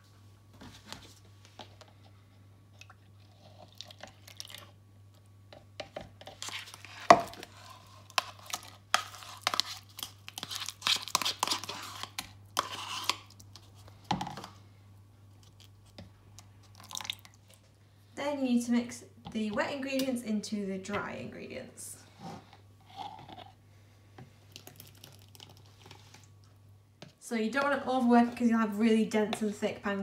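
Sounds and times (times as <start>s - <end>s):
metal spoon scraping plastic pot: 11.1s - 13.3s.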